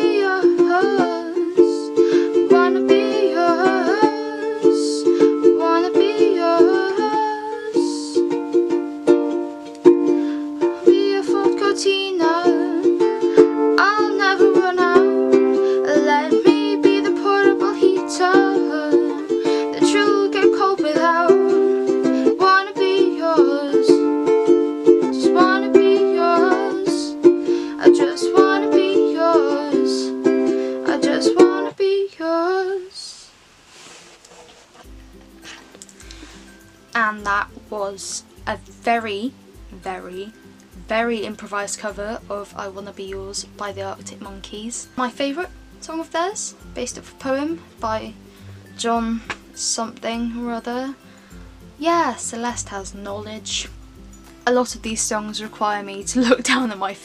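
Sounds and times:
ukulele strummed in chords: 0:00.0 - 0:32.5, 0:34.8 - 0:57.0.

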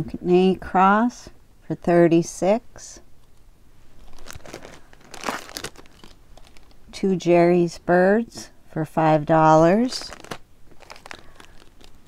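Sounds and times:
plastic bag crinkling: 0:03.9 - 0:06.9, 0:09.9 - 0:12.0.

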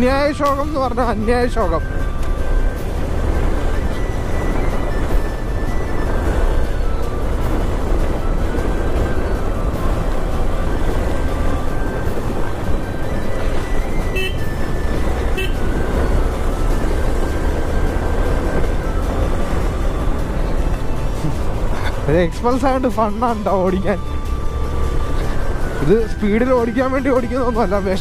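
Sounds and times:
motorcycle engine and road noise: 0:00.0 - 0:28.0
vehicle horn tooting: 0:14.1 - 0:14.6, 0:15.3 - 0:15.8.

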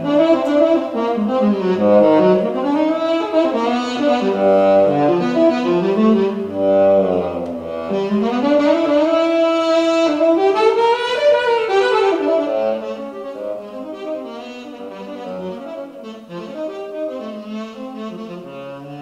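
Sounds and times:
synth saxophone melody: 0:00.0 - 0:19.0.

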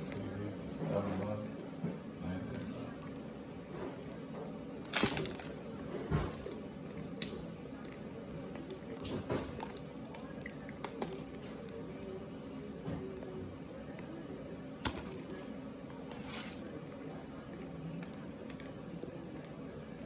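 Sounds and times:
starch chunks crunching: 0:04.8 - 0:05.6, 0:06.3 - 0:11.5.

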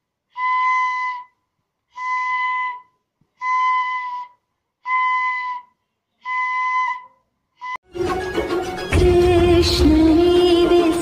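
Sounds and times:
bamboo flute note: 0:00.3 - 0:08.1.

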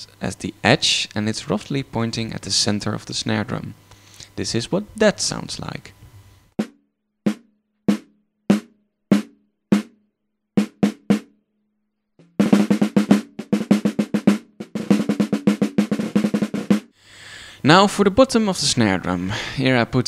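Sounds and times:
snare drum hits and rolls: 0:12.3 - 0:16.9.

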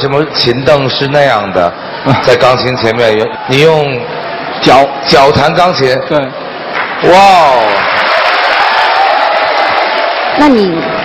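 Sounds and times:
audience applauding and cheering: 0:02.2 - 0:11.0.

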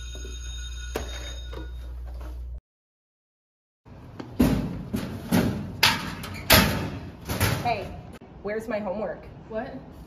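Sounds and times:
school bell ringing: 0:00.0 - 0:01.9.

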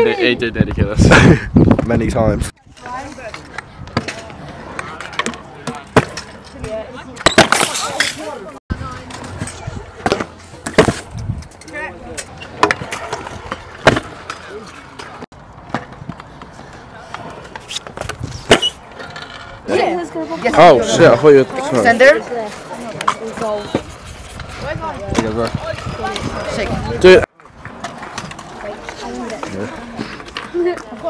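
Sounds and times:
scooter wheels rolling on concrete: 0:01.8 - 0:31.0
voices chatting: 0:16.4 - 0:31.0.

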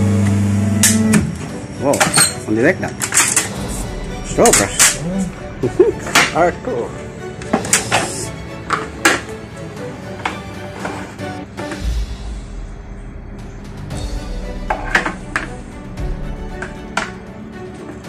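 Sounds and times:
music playing: 0:00.8 - 0:18.0.

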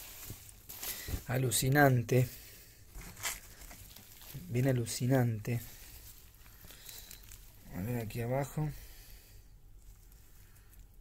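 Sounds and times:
low background noise: 0:00.0 - 0:11.0
rustling of damp compost: 0:00.0 - 0:11.0.

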